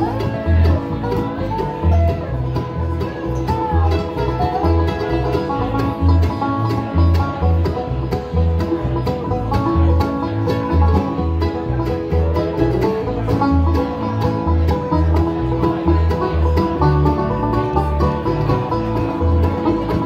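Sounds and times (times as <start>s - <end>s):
acoustic guitar: 0.0s - 20.0s
banjo rolls: 0.0s - 20.0s
mandolin: 0.0s - 20.0s
resonator guitar: 0.0s - 20.0s
upright bass thumping: 0.0s - 20.0s.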